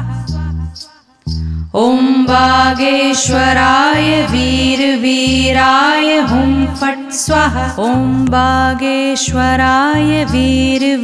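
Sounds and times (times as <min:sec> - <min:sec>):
low pulsing beat: 0:00.0 - 0:08.8.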